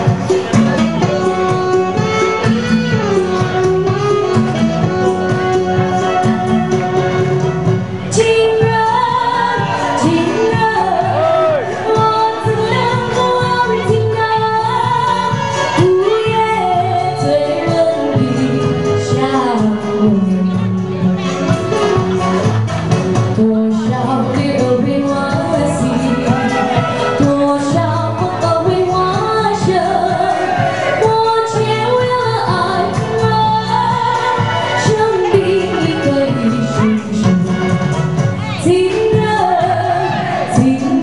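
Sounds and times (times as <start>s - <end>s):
backing music: 0.0s - 41.0s
woman singing into microphone: 8.0s - 21.5s, 23.3s - 41.0s.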